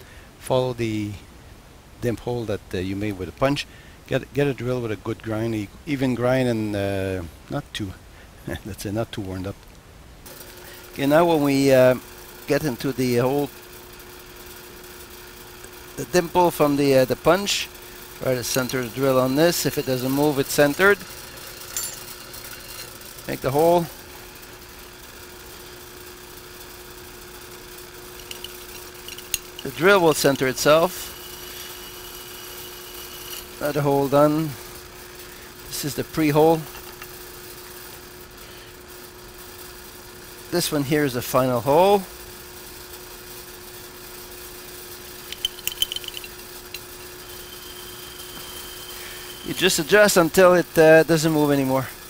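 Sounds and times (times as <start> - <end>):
drill press motor humming: 13.5 - 35.6, 44.9 - 50.8
faint high whine: 15.9 - 25.0, 27.8 - 36.7, 45.0 - 52.0
drill bit scraping metal: 16.1 - 23.8, 28.1 - 34.5, 45.3 - 51.4.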